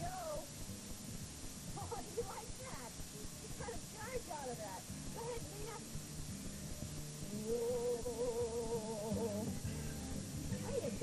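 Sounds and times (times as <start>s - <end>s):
tape hiss and hum: 0.0s - 11.0s.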